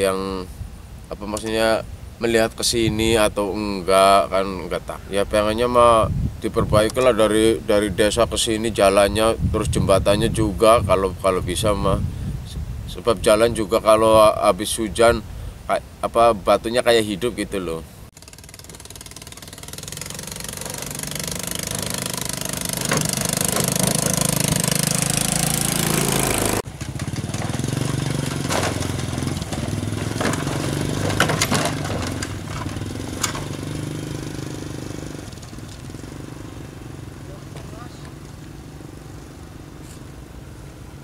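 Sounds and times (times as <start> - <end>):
wooden bridge planks clattering: 18.2 - 25.2, 26.7 - 34.6
small motorcycle engine running: 18.2 - 40.0.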